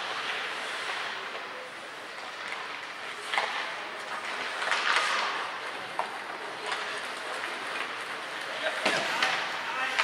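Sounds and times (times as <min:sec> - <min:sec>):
skates hissing on ice: 0:00.0 - 0:05.6
echoing rink din: 0:02.2 - 0:10.0.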